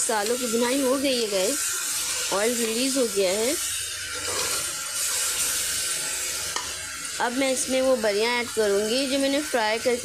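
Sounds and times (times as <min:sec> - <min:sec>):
paste sizzling in hot oil: 0:00.0 - 0:10.0.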